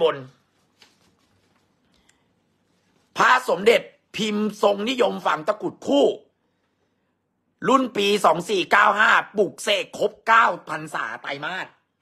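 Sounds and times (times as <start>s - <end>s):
man speaking: 0.0s - 0.5s, 3.1s - 6.4s, 7.6s - 12.0s
paper leaflet rustling: 0.2s - 3.2s.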